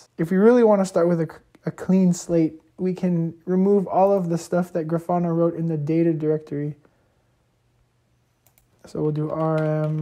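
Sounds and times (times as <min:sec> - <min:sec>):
computer keyboard clicks: 0:08.4 - 0:10.0.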